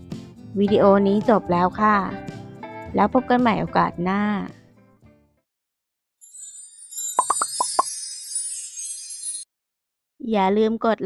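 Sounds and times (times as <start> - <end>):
glittering twinkle: 6.2 - 9.5
bubble-like pops: 7.2 - 7.9.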